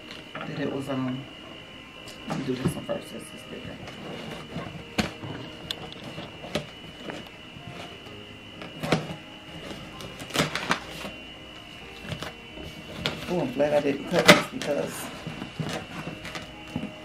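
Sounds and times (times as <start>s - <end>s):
scissors cutting packing tape: 8.7s - 11.2s, 14.1s - 16.9s
cardboard rustling: 11.8s - 17.0s.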